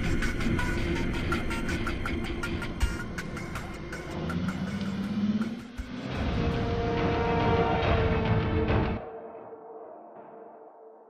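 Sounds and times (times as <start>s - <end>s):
car engine accelerating: 0.0s - 8.7s
background music: 0.0s - 11.0s.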